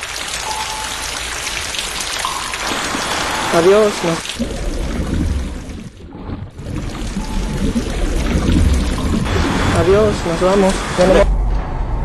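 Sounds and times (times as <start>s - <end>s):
loud low rumble: 6.7s - 12.0s.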